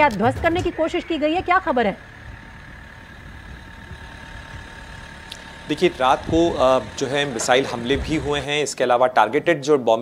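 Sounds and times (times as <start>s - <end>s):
low background rumble: 0.0s - 8.7s.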